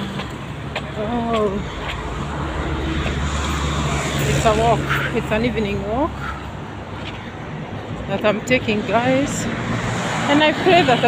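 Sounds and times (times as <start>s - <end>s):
road noise: 0.0s - 11.0s
vehicle engine drone: 0.0s - 11.0s.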